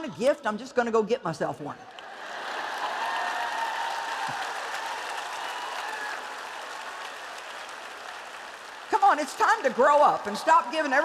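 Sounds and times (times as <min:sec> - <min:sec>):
large audience applauding: 0:02.0 - 0:11.0.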